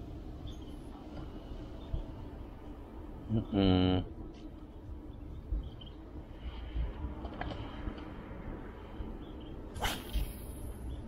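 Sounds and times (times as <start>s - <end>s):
wind rumble: 0.0s - 11.0s.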